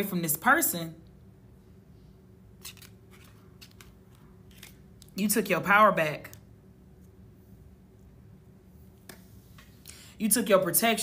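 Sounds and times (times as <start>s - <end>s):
low room hum: 0.0s - 11.0s
cards clicking and scraping: 2.6s - 5.2s.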